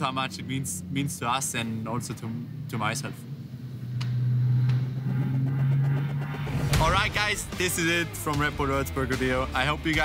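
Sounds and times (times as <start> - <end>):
engine drone: 0.0 - 10.0
background music: 4.2 - 10.0.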